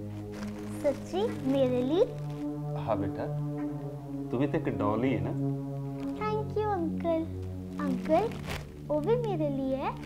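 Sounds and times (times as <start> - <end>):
droning background music: 0.0 - 10.0
person speaking: 2.8 - 5.4.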